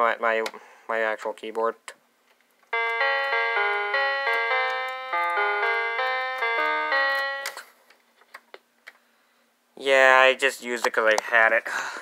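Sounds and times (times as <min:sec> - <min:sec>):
electronic keyboard melody: 0:02.8 - 0:07.8.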